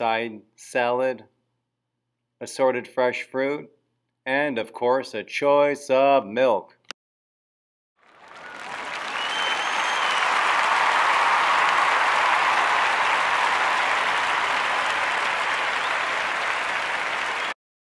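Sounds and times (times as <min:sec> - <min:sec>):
crowd applauding: 0:08.0 - 0:17.6.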